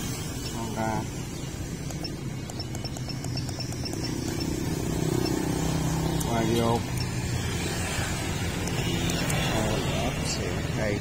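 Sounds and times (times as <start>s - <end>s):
traffic rumble: 0.0s - 11.0s
rapid light ticks: 1.8s - 4.6s, 6.2s - 7.2s.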